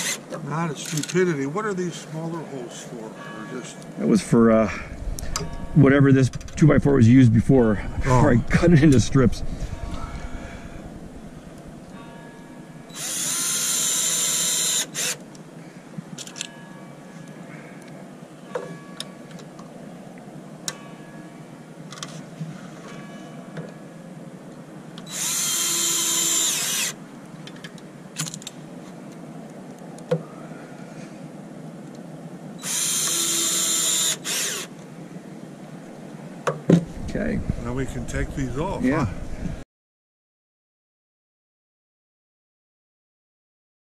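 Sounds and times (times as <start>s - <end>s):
cordless drill whining: 0.0s - 0.2s, 12.9s - 15.2s, 25.1s - 27.0s, 32.6s - 34.7s.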